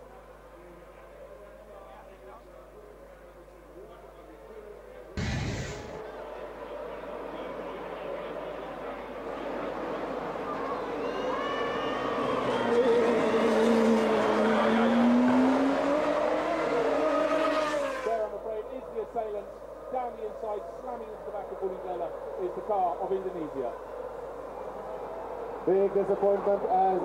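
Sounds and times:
racing engines revving: 5.2 - 27.0.

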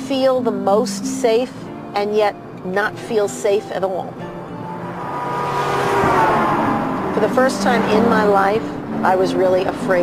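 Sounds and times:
car road noise: 0.0 - 10.0
soft background music: 0.0 - 10.0.

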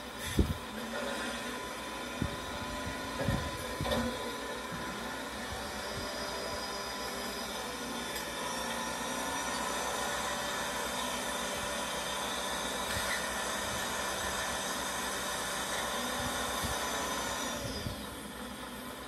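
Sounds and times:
heavy machinery engine and hiss: 0.0 - 19.0.

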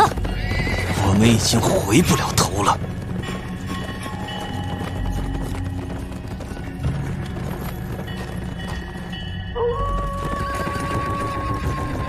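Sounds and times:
horse whinnying: 0.0 - 1.3
film music: 0.0 - 12.0
horse hoofbeats: 0.0 - 12.0.

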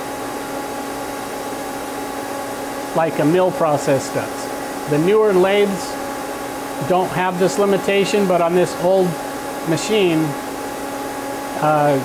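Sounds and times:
lathe machine humming: 0.0 - 12.0.

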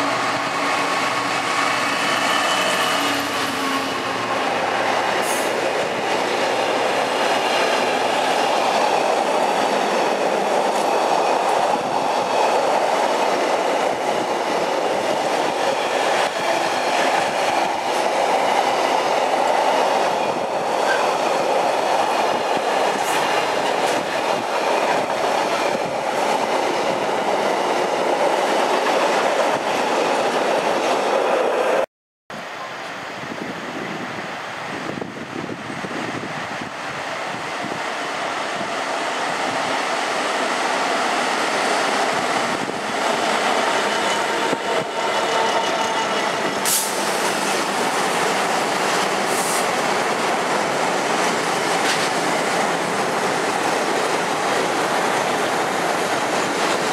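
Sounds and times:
diesel locomotive engine: 0.0 - 30.9, 32.4 - 56.9
train wheels on rails: 0.0 - 31.8, 32.6 - 56.9.

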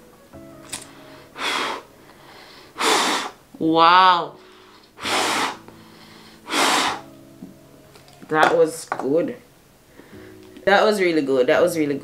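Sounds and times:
hard breaths through cloth mask: 0.8 - 3.4, 4.4 - 7.1.

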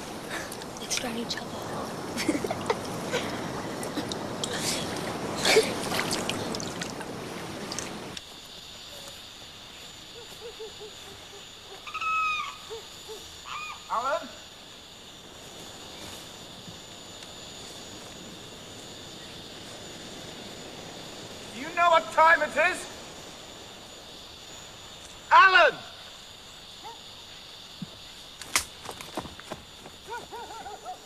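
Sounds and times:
water noise: 0.0 - 8.3
insect drone: 0.0 - 31.0
bird calling: 10.2 - 14.0, 30.1 - 31.0.

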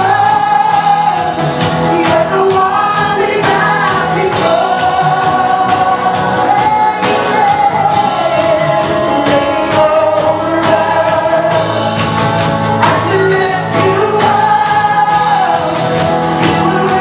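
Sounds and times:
group singing along: 0.0 - 17.0
strummed acoustic guitar and band: 0.0 - 17.0
woman singing: 0.0 - 17.0.

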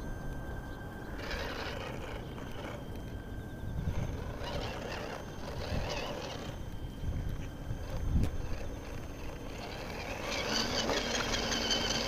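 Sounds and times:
electric motor whining: 0.0 - 12.0
wind rumble on microphone: 0.0 - 12.0.

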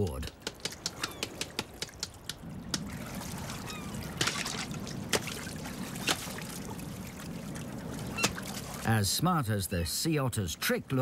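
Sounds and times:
water sloshing and splashing: 0.0 - 9.2.

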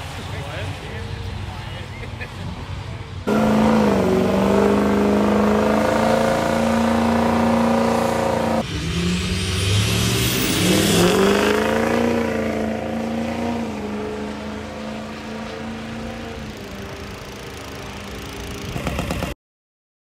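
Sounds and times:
drag-racing engines at full throttle: 0.0 - 19.4.

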